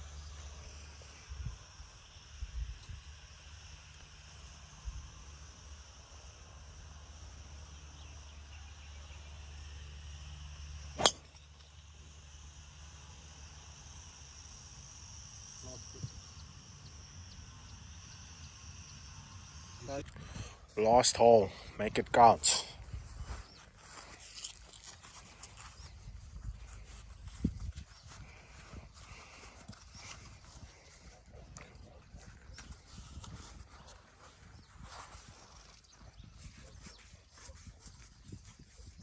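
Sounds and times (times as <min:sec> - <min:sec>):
golf club striking ball: 0:11.0 - 0:11.4.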